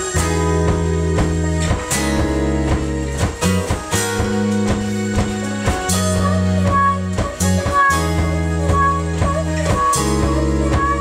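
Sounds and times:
indie rock band playing: 0.0 - 11.0.

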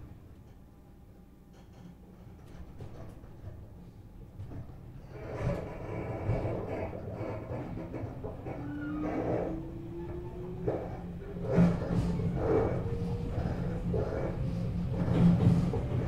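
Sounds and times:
train low rumble: 0.0 - 16.0.

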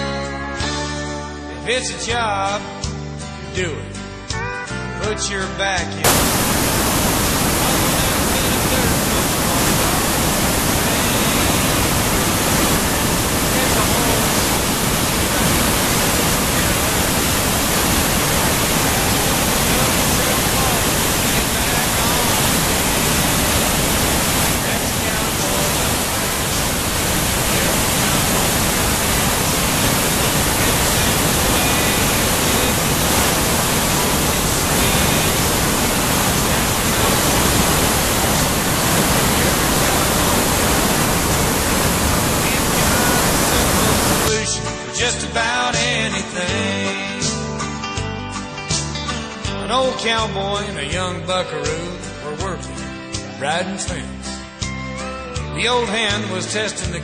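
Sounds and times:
country music: 0.0 - 57.0
waterfall rushing over rocks: 6.0 - 44.4.

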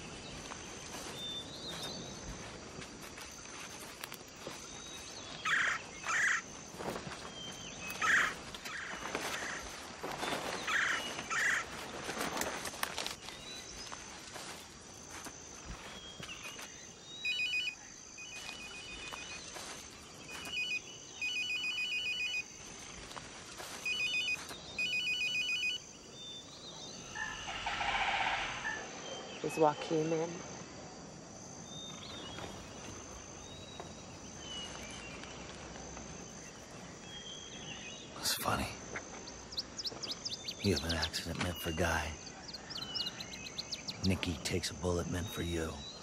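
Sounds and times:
rustling leaves and brush: 0.0 - 21.4, 22.2 - 25.2, 25.8 - 38.2
insect chirr: 0.0 - 46.0
mobile phone ringing: 17.2 - 19.3, 20.3 - 22.5, 23.8 - 25.8.

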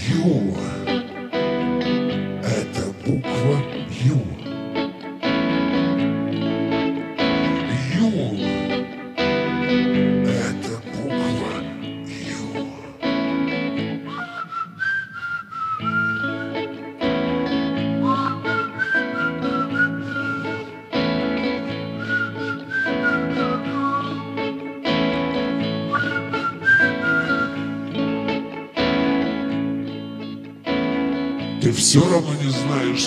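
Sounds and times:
electric guitar chords: 0.0 - 33.0
whistled melody: 13.9 - 28.6.

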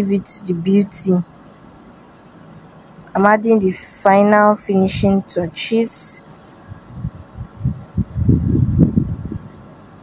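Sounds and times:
woman speaking: 0.0 - 1.3, 3.1 - 6.3
faint steady background hum: 0.0 - 10.0.

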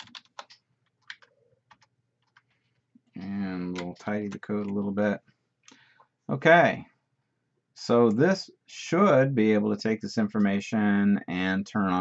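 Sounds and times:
keyboard key presses: 0.0 - 2.6
man talking: 3.1 - 5.3, 6.3 - 7.0, 7.8 - 12.0.

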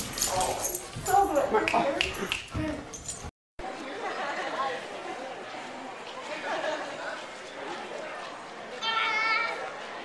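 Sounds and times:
chatter of many voices: 3.6 - 10.0.

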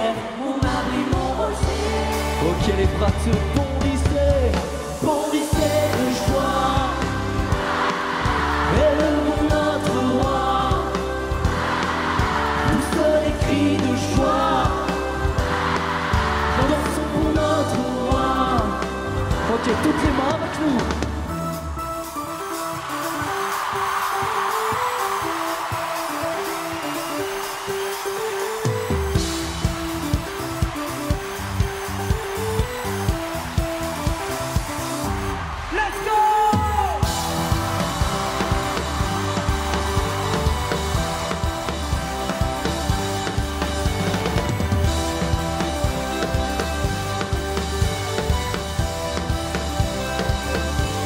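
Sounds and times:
live band playing pop-rock song: 0.0 - 51.0
steady drum beat: 0.6 - 21.4, 22.8 - 51.0
sustained keyboard chords: 37.0 - 51.0.

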